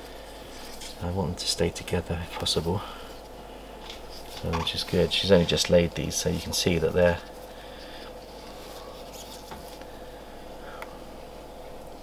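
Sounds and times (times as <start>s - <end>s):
gloved hands handling eggs: 0.0s - 11.1s
steady low hum: 0.0s - 12.0s.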